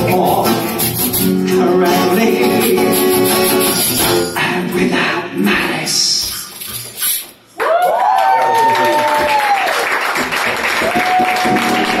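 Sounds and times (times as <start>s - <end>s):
song music: 0.0s - 7.2s
audience applause and cheers: 7.6s - 12.0s.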